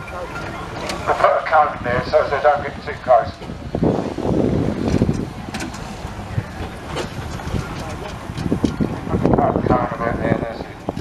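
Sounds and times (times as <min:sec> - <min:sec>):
steam engines rumbling: 0:00.0 - 0:11.0.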